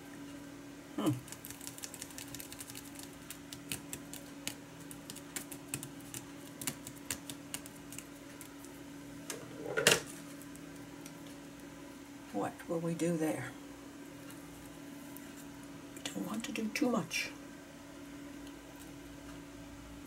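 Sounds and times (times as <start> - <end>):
faint steady hum: 0.0 - 20.0
paper and plastic crackling: 1.2 - 8.8.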